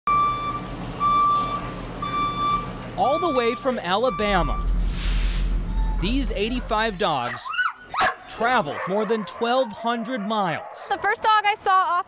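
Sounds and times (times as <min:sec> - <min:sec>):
reversing alarm beeping: 0:00.1 - 0:07.0
truck engine running low: 0:00.1 - 0:07.4.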